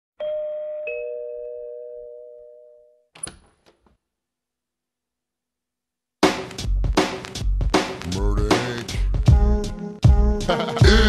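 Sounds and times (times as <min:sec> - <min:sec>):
two-tone doorbell chime with reverb: 0:00.2 - 0:03.1.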